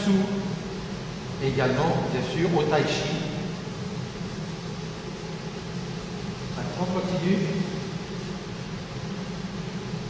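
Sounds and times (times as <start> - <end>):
low room hum with hiss: 0.0 - 10.0.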